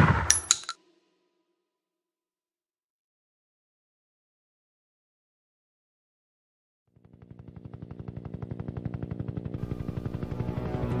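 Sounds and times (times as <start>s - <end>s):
helicopter chopper beats: 6.9s - 11.0s.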